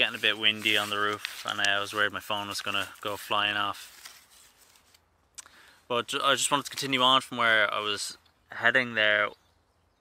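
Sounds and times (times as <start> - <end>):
man talking: 0.0 - 3.9, 5.9 - 9.4
faint background hiss: 0.0 - 10.0.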